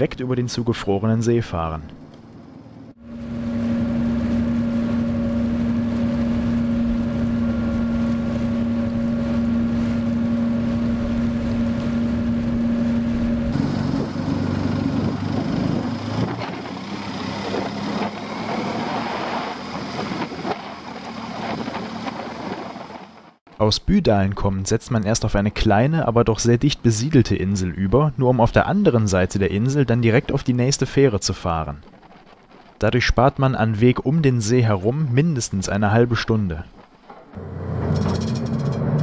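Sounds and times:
ferry engine hum: 0:00.0 - 0:23.4, 0:36.5 - 0:39.0
water rushing along hull: 0:03.0 - 0:23.4
wind on microphone: 0:03.9 - 0:23.3.

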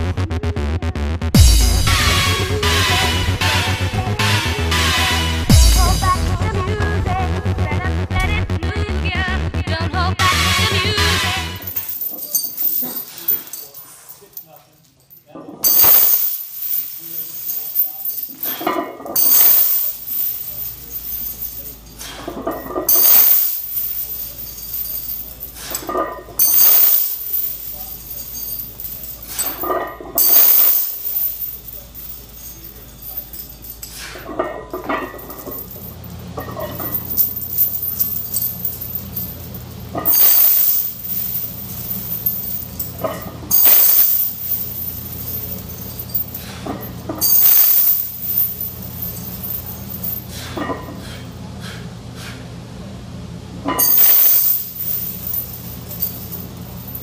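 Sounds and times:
heavy chains clinking and rattling: 0:11.2 - 0:51.0, 0:53.8 - 0:57.0.

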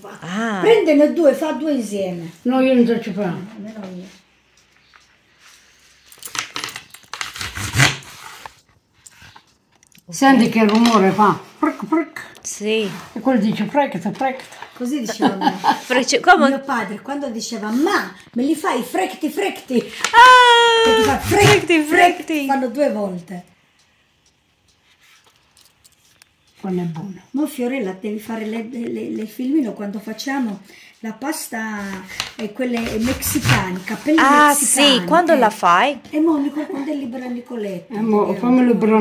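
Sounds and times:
pasta rubbed on wooden board: 0:12.6 - 0:13.7, 0:14.8 - 0:16.8, 0:31.2 - 0:35.0.

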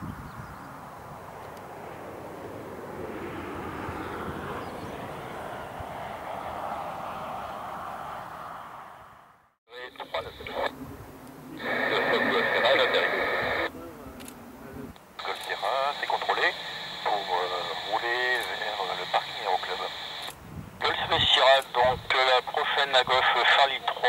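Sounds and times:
tinny radio voices: 0:09.7 - 0:10.8, 0:11.4 - 0:20.2, 0:20.8 - 0:24.0.

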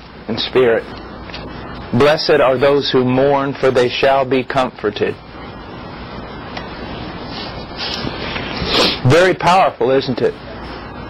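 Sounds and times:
clothing rubbing on microphone: 0:06.8 - 0:09.1
sharp hiss: 0:07.1 - 0:09.2.

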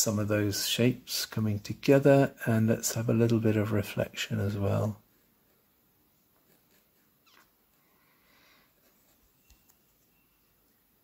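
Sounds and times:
brush stroke on canvas: 0:08.7 - 0:10.1.

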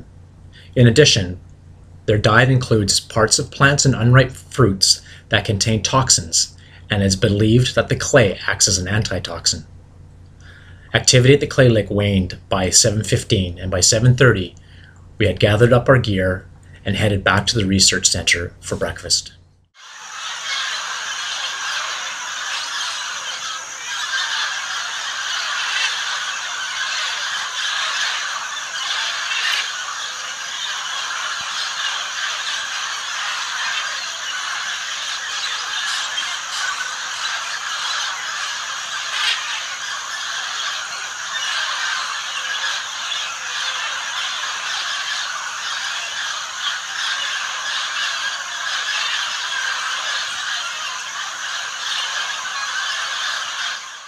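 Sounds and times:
parrots screeching and squawking: 0:19.8 - 0:54.0.

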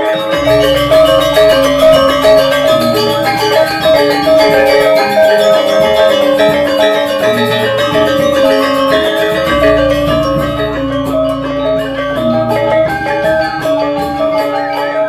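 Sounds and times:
gamelan metallophones ringing: 0:00.0 - 0:15.0.

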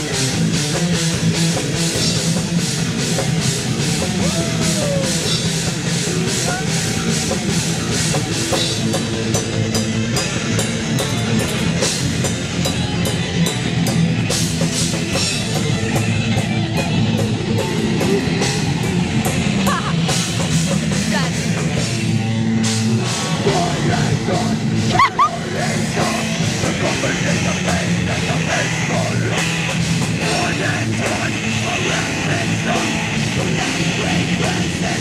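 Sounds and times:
distorted electric guitars: 0:00.0 - 0:35.0
drum kit and cymbal hits: 0:00.0 - 0:35.0.

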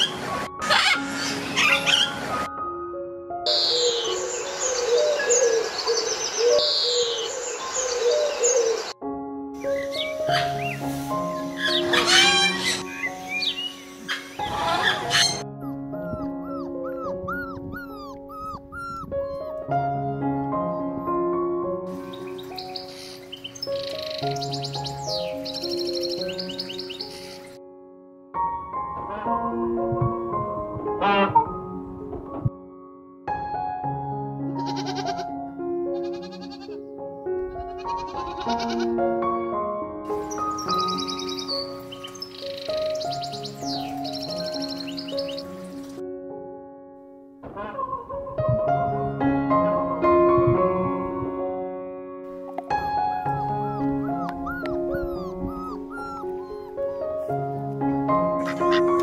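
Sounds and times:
puppies yelping: 0:00.0 - 0:02.2, 0:11.6 - 0:19.8, 0:53.2 - 0:57.4, 0:58.4 - 0:59.0
gentle background music: 0:00.0 - 0:59.0
parrot squawks: 0:00.6 - 0:02.2, 0:11.6 - 0:13.1, 0:14.1 - 0:15.8.

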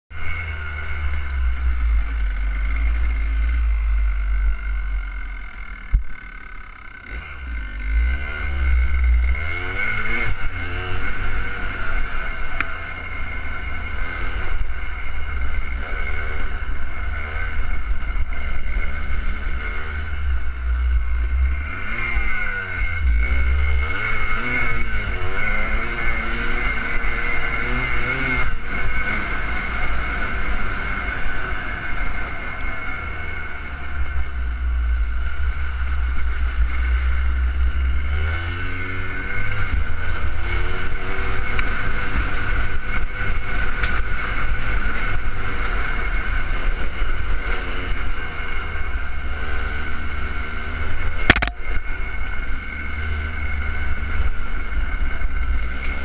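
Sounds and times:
dirt bike engine revving: 0:00.1 - 0:56.0.

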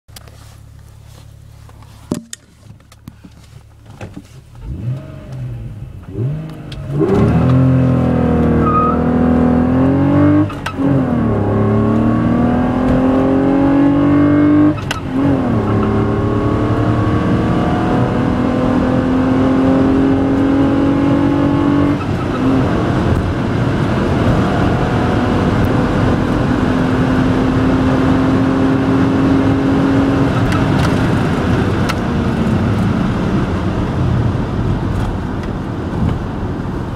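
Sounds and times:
road and wind noise: 0:00.1 - 0:36.9
car engine accelerating through gears: 0:04.5 - 0:36.9.

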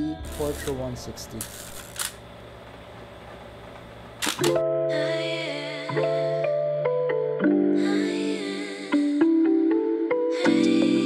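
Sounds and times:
soft music with sustained chords: 0:00.0 - 0:01.7, 0:04.3 - 0:11.0
camera shutter clicking: 0:01.4 - 0:02.2, 0:04.2 - 0:04.6.

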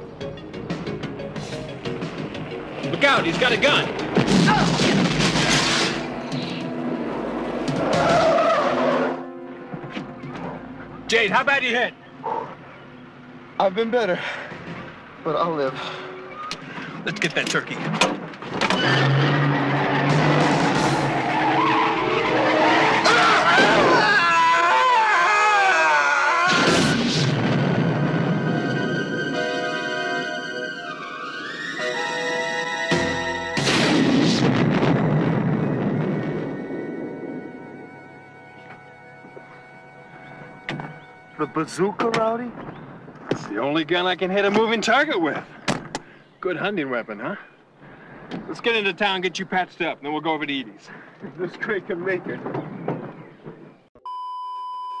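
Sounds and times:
dramatic music with rising tone: 0:00.0 - 0:04.4, 0:05.0 - 0:11.1, 0:27.0 - 0:41.6
film soundtrack: 0:00.0 - 0:44.7
bazooka blast: 0:04.1 - 0:06.2, 0:18.8 - 0:24.2, 0:26.4 - 0:29.3, 0:32.9 - 0:37.7
loud explosion: 0:04.2 - 0:06.1, 0:26.5 - 0:28.9, 0:33.6 - 0:37.0
steady test-tone beep: 0:54.0 - 0:55.0.

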